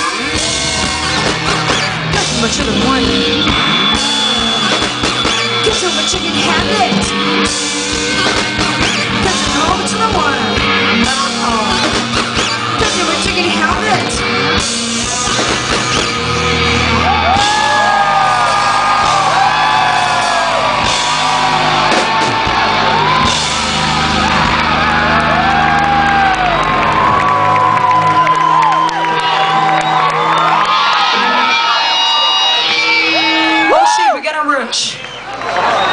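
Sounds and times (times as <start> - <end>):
live rock band playing: 0.0 - 35.8
audience whooping and shouting: 0.0 - 35.9.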